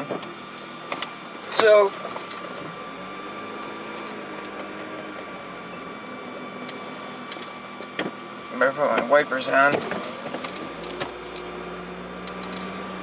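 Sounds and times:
car engine running: 0.0 - 13.0
thin steady whine: 0.0 - 13.0.

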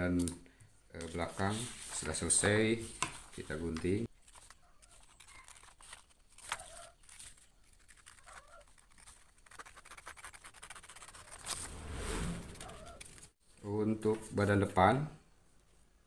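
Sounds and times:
paper rustling: 1.0 - 11.8, 12.4 - 13.4
scissors cutting paper: 4.2 - 11.7, 12.6 - 13.3.

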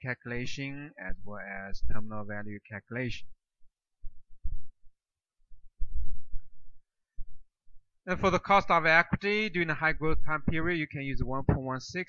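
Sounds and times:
low dull thumps: 4.0 - 7.9.

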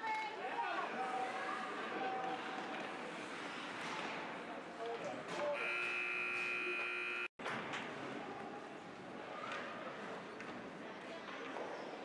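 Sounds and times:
scoreboard buzzer tone: 5.6 - 7.3.

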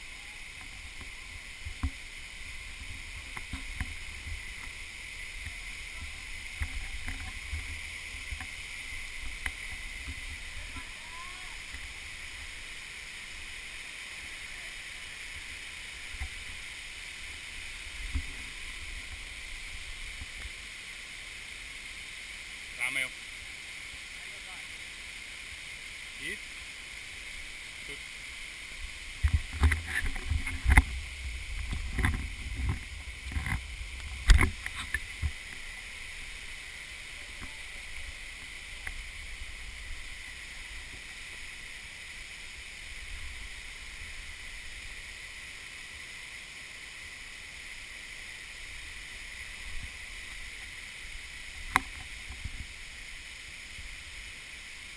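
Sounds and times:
waterfall rushing hiss: 0.0 - 54.9.

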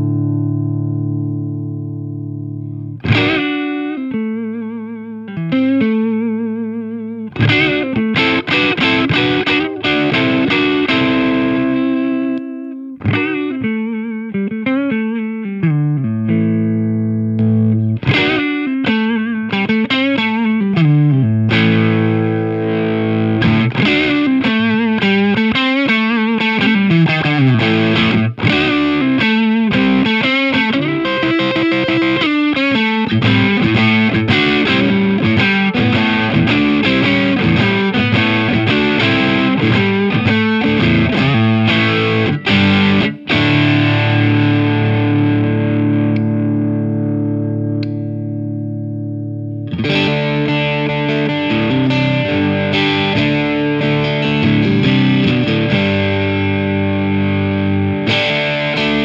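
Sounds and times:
overdriven electric guitar: 0.0 - 59.0.

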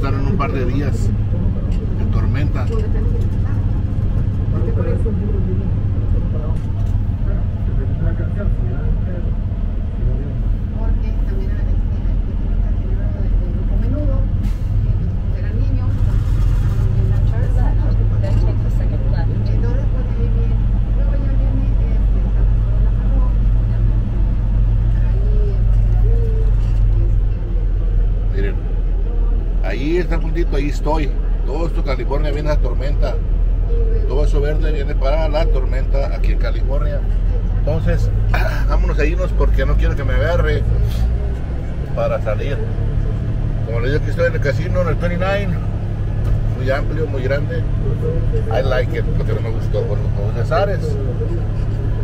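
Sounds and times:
diesel truck engine idling: 0.0 - 52.0.

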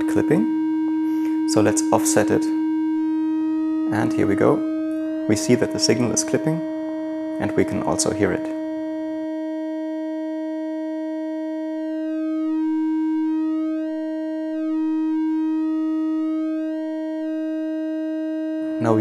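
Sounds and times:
clipped synth triangle wave tone: 0.0 - 19.0.

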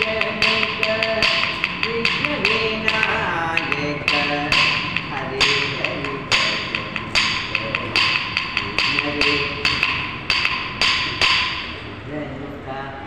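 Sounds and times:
sharp ringing percussion strokes: 0.0 - 11.9.

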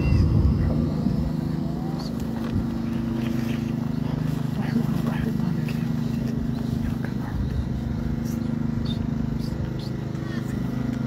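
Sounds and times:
faint voices: 0.0 - 11.0
low droning hum: 0.0 - 11.0.

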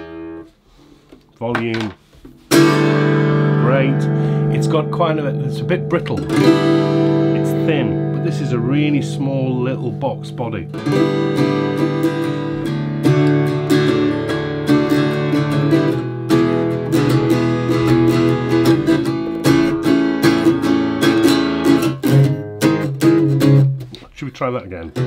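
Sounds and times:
acoustic guitar strumming chords: 0.0 - 0.6, 2.4 - 25.0.

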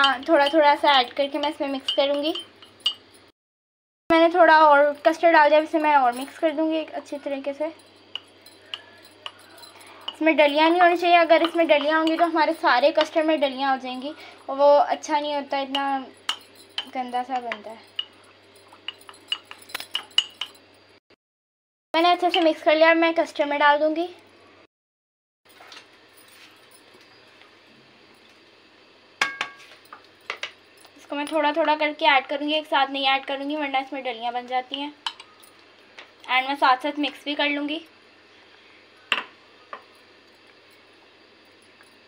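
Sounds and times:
spoon clinking in glass mug: 0.0 - 3.3, 7.2 - 13.7, 15.7 - 20.7, 29.2 - 31.4, 35.0 - 35.6.

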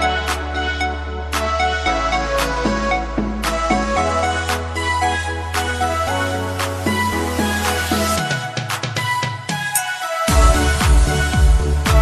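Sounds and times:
pop track with bass and drums: 0.0 - 12.0.

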